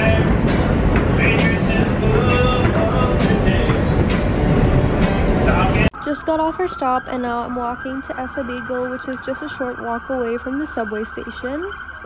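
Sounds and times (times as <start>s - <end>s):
acoustic guitar: 0.0s - 11.6s
train rumble: 0.0s - 11.8s.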